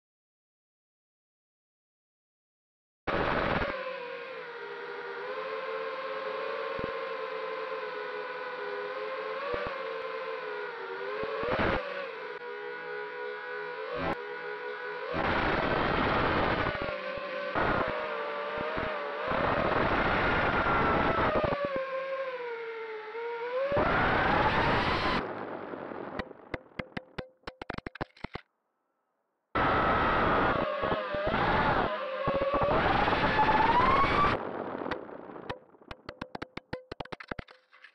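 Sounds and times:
drone motors whining: 29.6s - 37.0s.

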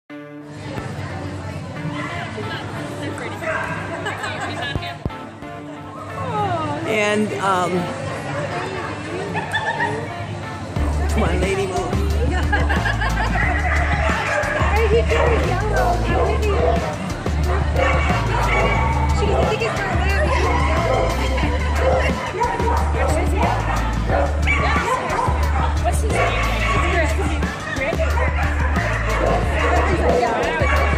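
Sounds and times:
background music: 0.1s - 30.9s
dog barking: 13.6s - 27.1s, 27.8s - 30.9s.

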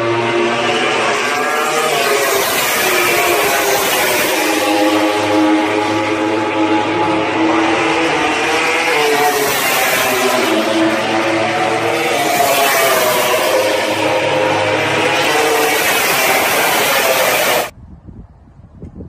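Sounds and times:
racing motorcycle engines: 0.0s - 17.8s.

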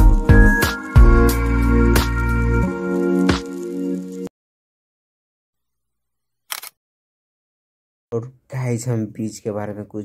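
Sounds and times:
sharp double click: 6.5s - 6.8s.

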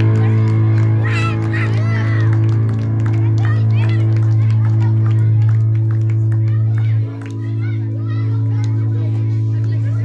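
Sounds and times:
children calling out: 0.2s - 2.4s, 6.4s - 8.8s.

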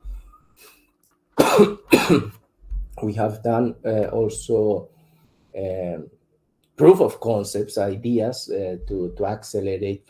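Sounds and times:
man coughing: 1.4s - 2.4s.

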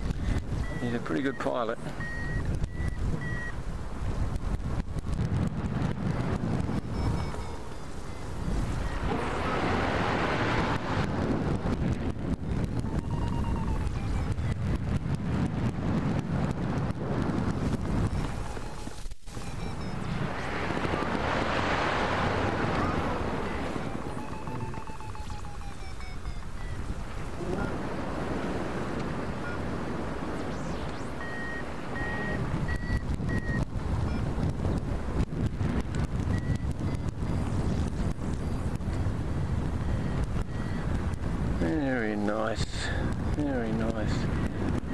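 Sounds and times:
evenly spaced beeps: 0.0s - 3.6s, 5.8s - 10.4s, 11.5s - 15.8s, 17.4s - 27.9s, 28.9s - 44.9s
faint pitch-sliding beeps: 0.0s - 3.6s, 5.8s - 10.5s, 11.2s - 15.1s, 17.5s - 28.0s, 28.9s - 44.9s
wind rushing over microphone: 0.0s - 44.9s.

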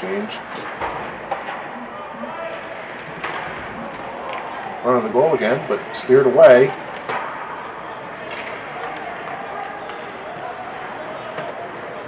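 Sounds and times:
crowd noise: 0.0s - 12.0s
distant voices: 0.0s - 12.0s
hockey sticks and puck knocking: 0.5s - 1.7s, 2.5s - 4.6s, 6.7s - 7.5s, 8.1s - 11.9s.

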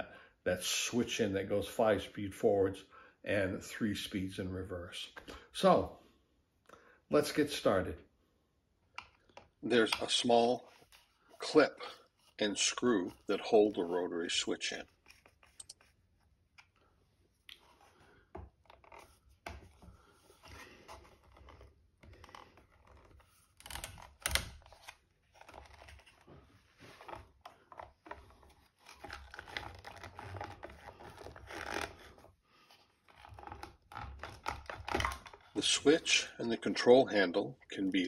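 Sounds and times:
screwdriver scraping and clicking: 15.0s - 15.8s.

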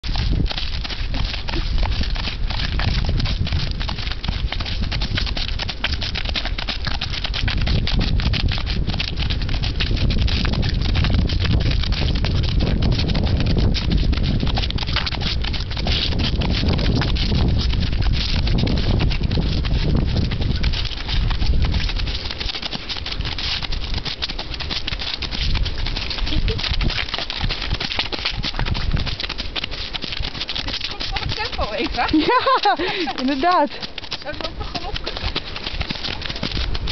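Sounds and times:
horses' hoofbeats: 0.0s - 36.9s
wind rumble on microphone: 0.0s - 36.9s.

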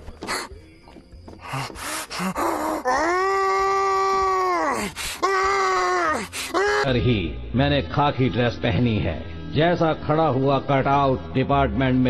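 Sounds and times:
drawn-out vocal wail: 1.4s - 6.9s.

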